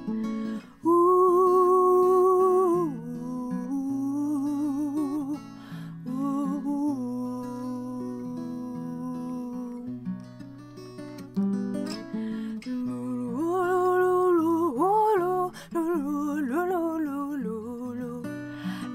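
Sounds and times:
strummed acoustic guitar: 0.0s - 18.9s
woman singing wordless notes: 0.5s - 10.1s, 12.6s - 18.9s.

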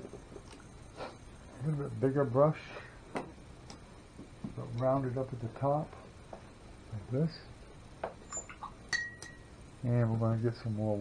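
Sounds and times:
paintbrush clinking against glass jar: 8.3s - 9.5s.

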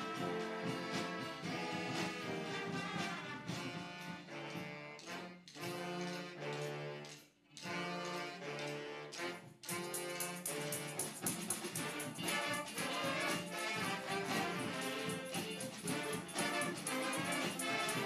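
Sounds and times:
brass band playing chords: 0.0s - 18.0s.

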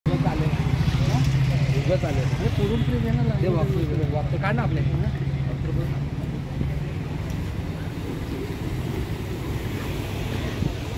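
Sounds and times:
people talking: 0.1s - 10.9s
vehicle engine droning: 0.1s - 10.9s.

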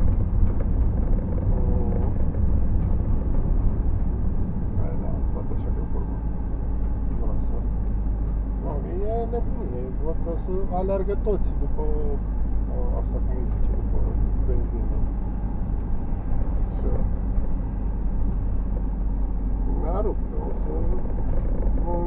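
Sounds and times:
road and engine rumble in car: 0.0s - 22.0s.

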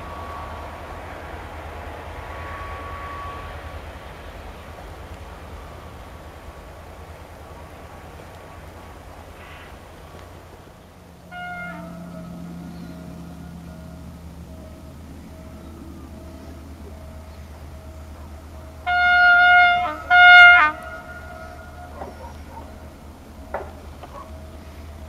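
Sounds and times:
locomotive horn blasts: 0.0s - 1.4s, 2.2s - 4.0s, 11.1s - 25.0s
level crossing warning tone: 0.0s - 3.8s, 11.2s - 25.0s.

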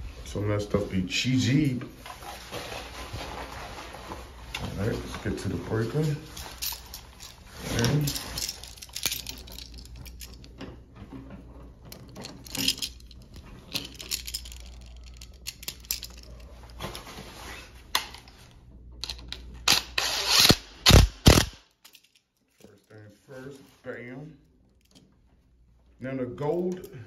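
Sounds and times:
low steady hum: 0.0s - 27.0s
wires rustling: 2.0s - 19.6s.

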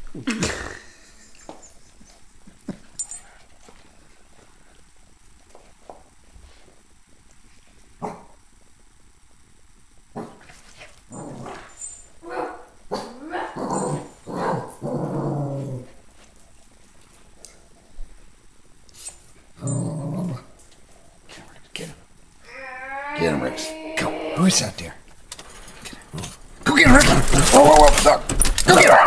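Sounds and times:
small dogs growling and barking: 8.0s - 8.4s, 10.1s - 16.1s, 19.5s - 20.6s, 26.1s - 29.0s.

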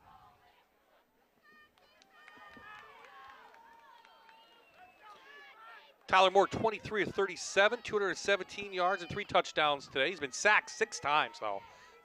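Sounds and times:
distant shouting voices: 5.2s - 12.0s.

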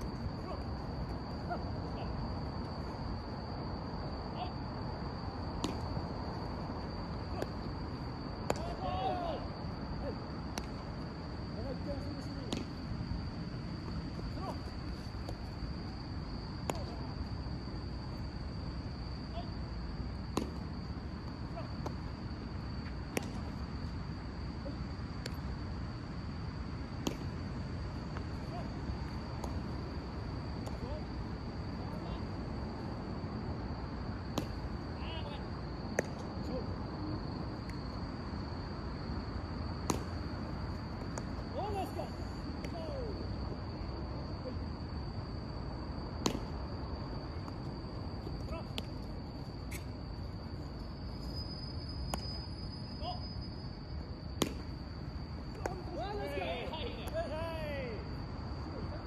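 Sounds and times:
distant shouts of players: 4.2s - 4.6s, 8.5s - 10.3s, 14.2s - 14.8s, 28.4s - 28.9s, 35.0s - 35.5s, 41.5s - 43.3s, 55.5s - 59.0s
balls smacking into gloves: 5.6s - 6.0s, 8.4s - 8.8s, 10.4s - 10.8s, 12.4s - 12.8s, 16.6s - 17.1s, 20.3s - 22.2s, 22.8s - 23.6s, 25.2s - 25.4s, 27.0s - 27.4s, 29.3s - 29.8s, 34.3s - 34.7s, 35.9s - 36.4s, 39.8s - 40.3s, 41.0s - 41.4s, 46.2s - 46.6s, 47.4s - 49.1s, 54.4s - 54.7s
bat hitting baseballs: 5.6s - 6.0s, 12.5s - 12.8s, 23.1s - 23.5s, 27.0s - 27.4s, 29.3s - 29.8s, 34.3s - 34.7s, 39.8s - 40.4s, 46.2s - 46.6s, 54.4s - 54.7s.

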